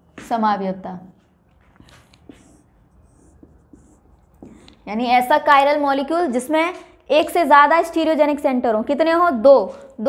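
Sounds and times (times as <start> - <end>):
marker scratching on whiteboard: 1.2 - 5.8.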